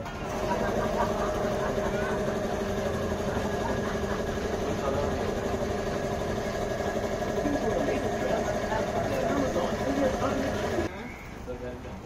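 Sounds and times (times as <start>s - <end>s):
faint indistinct voices: 0.0s - 12.0s
steady mechanical hum: 0.0s - 12.0s.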